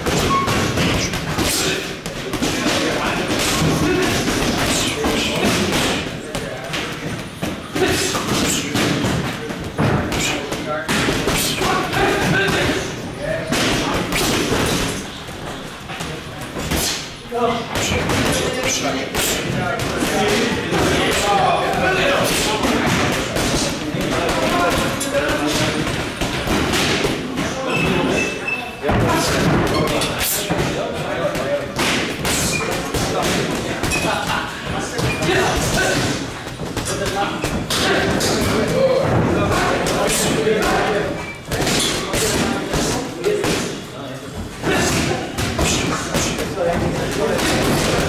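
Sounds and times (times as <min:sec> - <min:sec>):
voices talking: 0:00.0 - 0:48.0.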